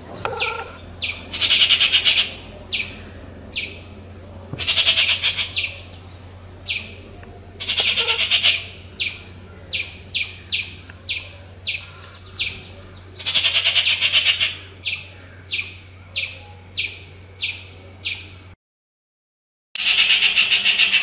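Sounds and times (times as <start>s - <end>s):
harsh rattling bird chatter: 0.0s - 18.4s, 19.8s - 21.0s
high downward-sliding bird chirps: 0.0s - 18.4s.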